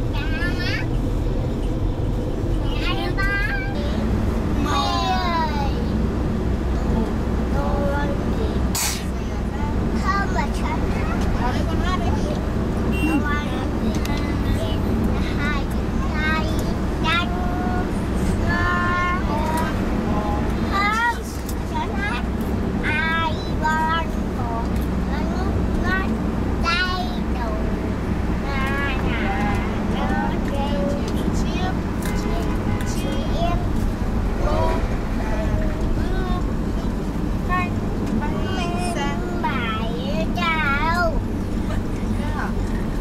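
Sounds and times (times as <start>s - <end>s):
engine and road drone: 0.0s - 43.0s
girl singing: 2.7s - 5.8s, 6.8s - 11.2s, 13.1s - 27.8s, 28.4s - 33.8s, 34.4s - 41.3s.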